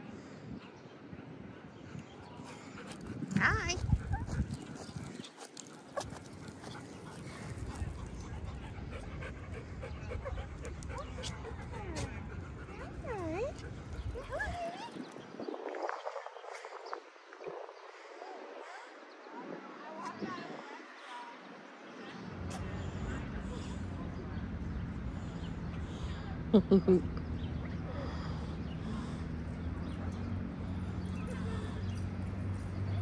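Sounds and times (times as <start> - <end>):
steady low rumble: 6.1 - 14.8.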